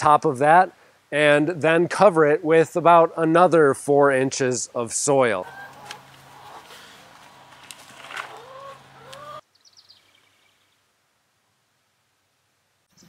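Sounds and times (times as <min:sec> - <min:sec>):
chickens clucking: 0:05.4 - 0:09.4
scraping in soil: 0:05.8 - 0:08.5.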